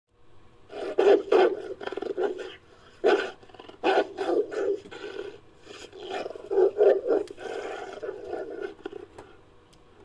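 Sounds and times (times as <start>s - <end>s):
creature growling and snarling: 0.7s - 9.0s.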